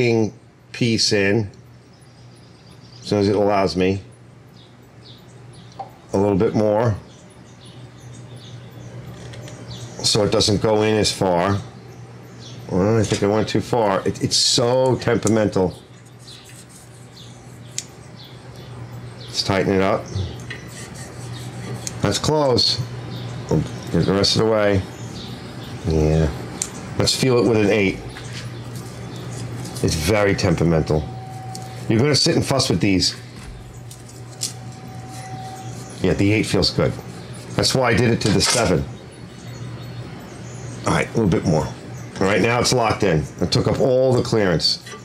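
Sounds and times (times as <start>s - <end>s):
low workshop hum: 0.0s - 45.0s.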